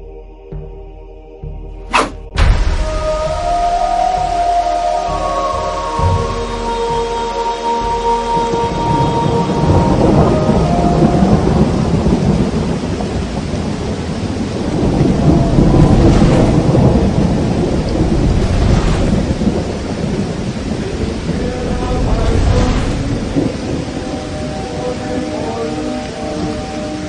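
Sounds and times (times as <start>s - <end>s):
heavy rain: 2.3s - 27.0s
rolling thunder: 2.3s - 27.0s.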